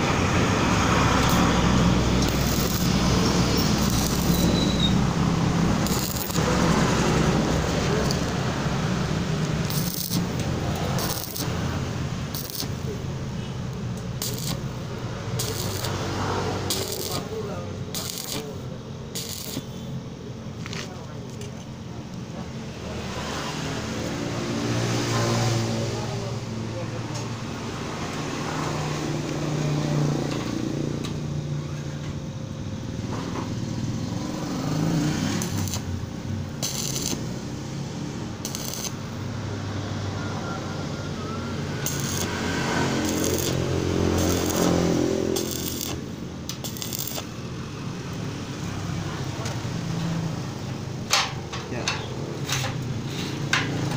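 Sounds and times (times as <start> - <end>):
welding arc crackling: 0.0 - 19.9, 33.9 - 39.8, 41.5 - 49.0, 52.4 - 53.9.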